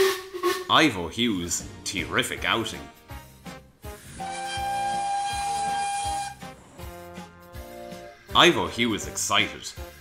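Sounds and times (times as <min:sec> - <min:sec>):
steam locomotive whistle: 0:00.0 - 0:00.7, 0:04.0 - 0:06.5
background music: 0:00.0 - 0:10.0.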